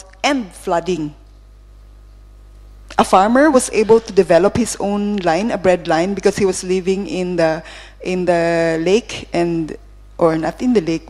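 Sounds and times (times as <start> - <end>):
woman speaking over loudspeaker: 0.0 - 1.2, 2.9 - 11.0
low room hum: 0.0 - 11.0.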